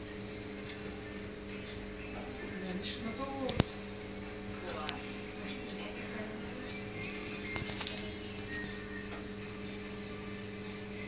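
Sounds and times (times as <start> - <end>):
incubator fan humming: 0.0 - 11.0.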